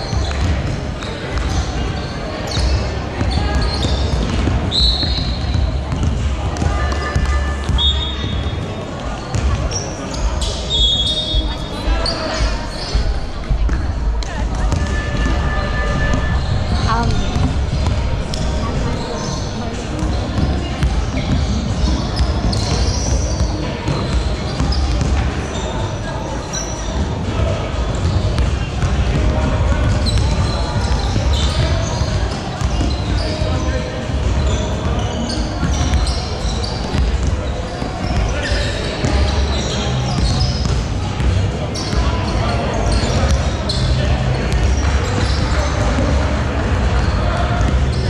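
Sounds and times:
indistinct voices: 0.0 - 48.0
sneaker squeaks: 0.0 - 48.0.

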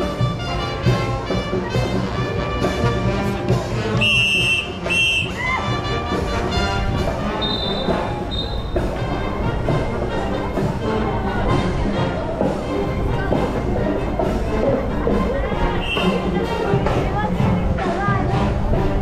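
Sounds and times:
marching band music: 0.0 - 19.0
steady drum beat: 0.0 - 19.0.

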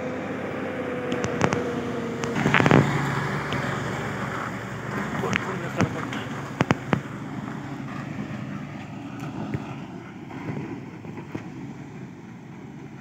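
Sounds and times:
vehicle engine running: 0.0 - 13.0
wind noise on microphone: 1.0 - 11.6.

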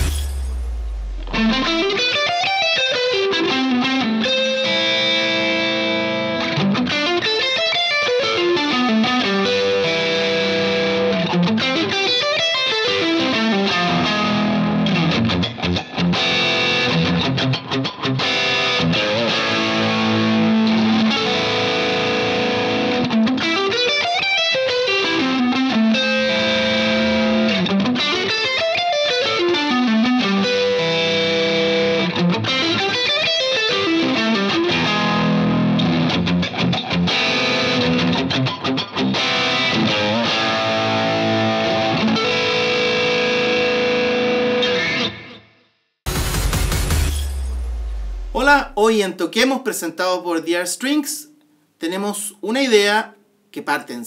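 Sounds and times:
electric guitar arpeggios: 1.1 - 45.4.

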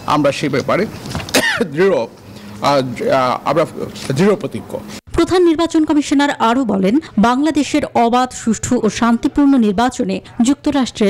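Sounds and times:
man clearing throat: 1.3 - 1.8
man speaking: 1.6 - 5.0.

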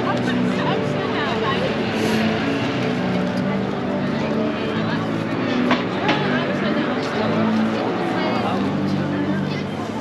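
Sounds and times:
road traffic passing: 0.0 - 9.9
voices of passers-by: 0.0 - 10.0.

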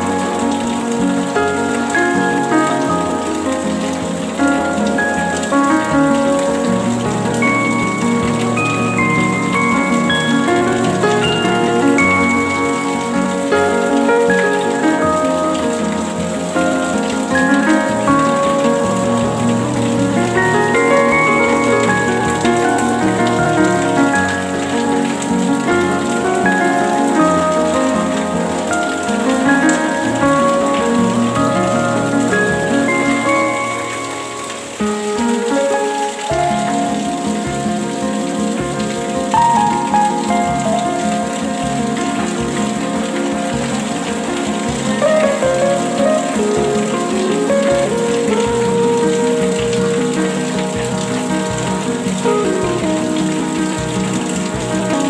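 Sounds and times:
gentle instrumental music: 0.0 - 55.0
steady rain hiss: 0.0 - 55.0.

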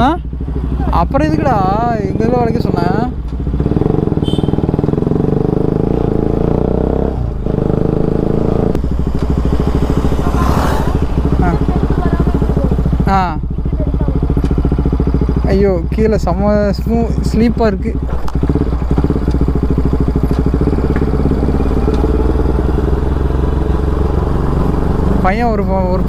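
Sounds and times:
motorcycle engine running: 0.0 - 26.0.

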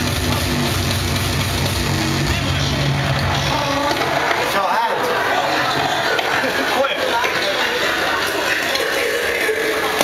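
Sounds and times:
drum and bass music: 0.0 - 4.3.

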